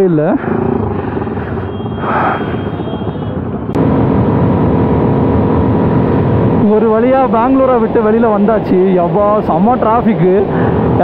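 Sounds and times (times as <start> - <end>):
wind and road noise: 0.0 - 11.0
motorcycle engine running: 0.4 - 8.5.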